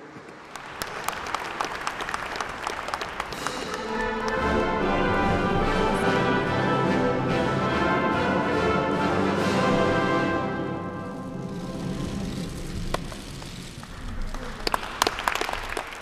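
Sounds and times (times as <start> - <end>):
orchestral music with brass and timpani: 3.3 - 12.4.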